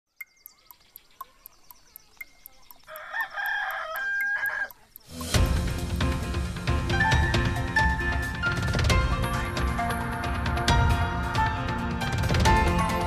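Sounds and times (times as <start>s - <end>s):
clock ticking: 0.2s - 5.9s
rooster crowing: 2.9s - 4.8s.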